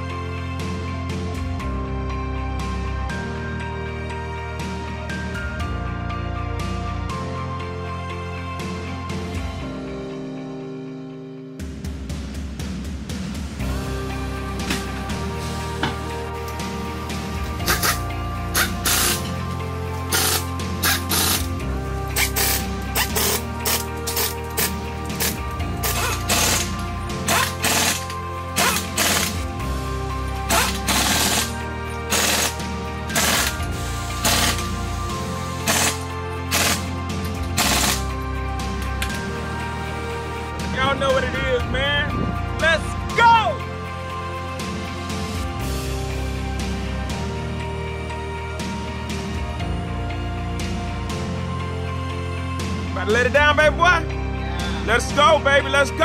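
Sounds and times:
background music with bass line: 0.0s - 56.0s
pneumatic impact wrench rattling: 17.6s - 19.4s, 20.1s - 21.5s, 22.2s - 29.5s, 30.5s - 34.8s, 35.6s - 38.1s.

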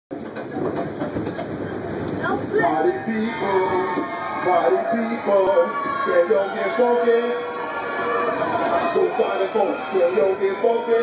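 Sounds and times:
subway wheels rumbling on rails: 0.1s - 11.0s.

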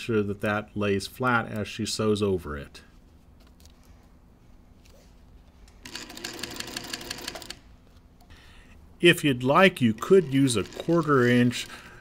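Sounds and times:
sewing machine stitching: 5.8s - 7.6s, 10.0s - 11.7s.

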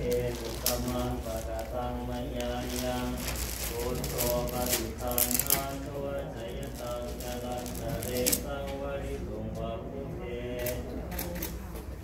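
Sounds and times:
monks chanting: 0.0s - 11.1s.

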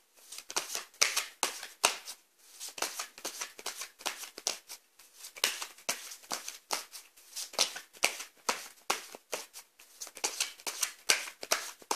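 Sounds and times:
cards being shuffled: 0.3s - 11.9s.

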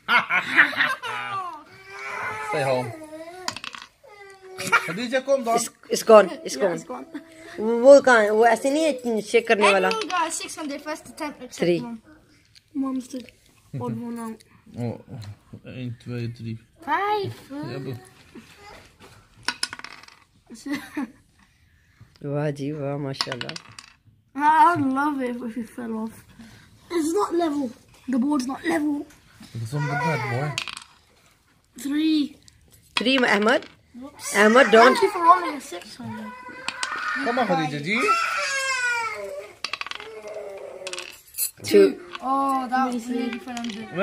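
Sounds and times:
die clattering on wooden board: 3.5s - 3.9s, 19.4s - 20.2s, 30.5s - 31.0s, 36.6s - 37.0s, 39.6s - 41.2s.

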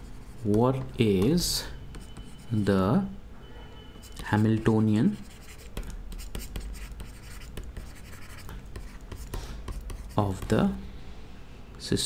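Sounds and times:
stylus scratching on tablet: 0.0s - 2.7s, 4.0s - 10.7s.

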